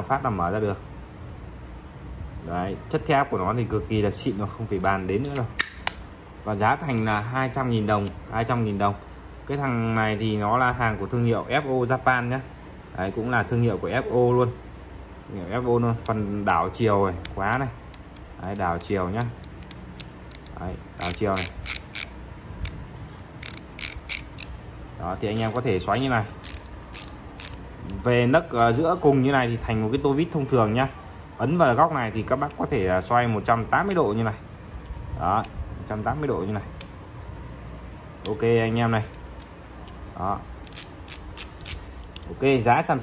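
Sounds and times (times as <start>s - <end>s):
screwdriver collar clicking: 17.2s - 22.8s, 23.4s - 24.5s, 25.3s - 27.6s, 40.6s - 42.3s.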